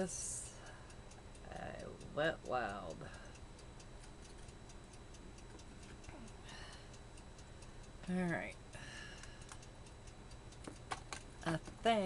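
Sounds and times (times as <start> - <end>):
faint rapid ticking: 0.0 - 12.0
low background hiss: 0.0 - 12.0.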